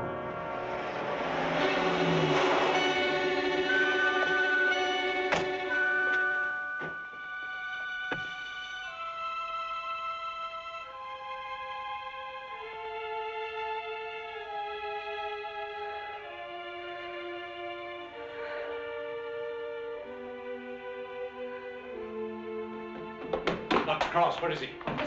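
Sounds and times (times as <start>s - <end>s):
dramatic orchestral music: 0.0s - 25.0s.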